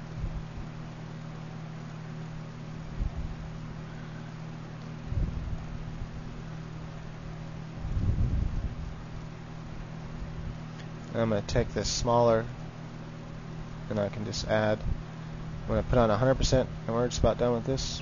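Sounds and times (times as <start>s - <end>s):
computer hum and hiss: 0.0s - 18.0s.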